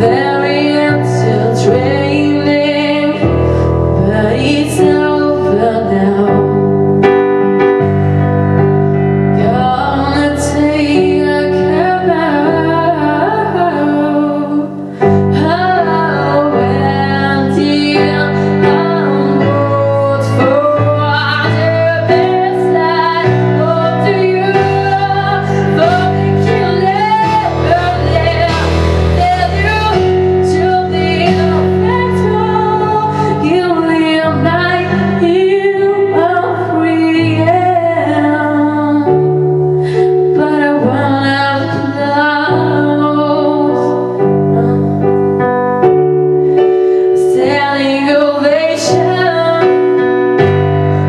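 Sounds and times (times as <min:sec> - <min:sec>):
digital piano chords: 0:00.0 - 0:51.0.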